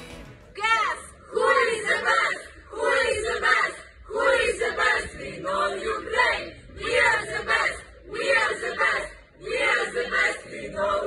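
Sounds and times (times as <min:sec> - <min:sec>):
group chanting in unison: 0:00.9 - 0:11.0.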